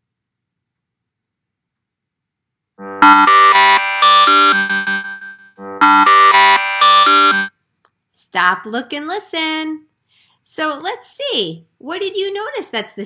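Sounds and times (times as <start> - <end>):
timer alarm melody: 2.8 - 7.5.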